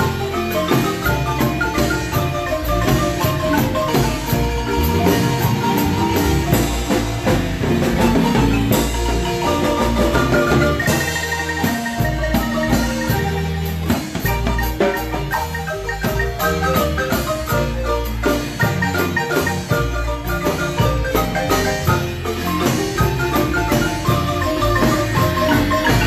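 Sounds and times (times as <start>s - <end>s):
marimba bass line: 0.0s - 26.0s
marimba melody: 0.0s - 26.0s.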